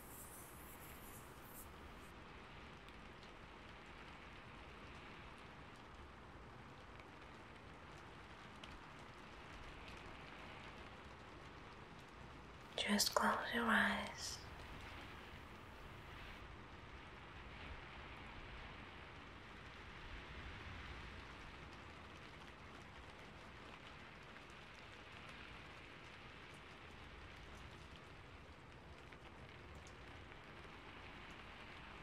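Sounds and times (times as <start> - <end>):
faint steady hiss: 0.0 - 32.0.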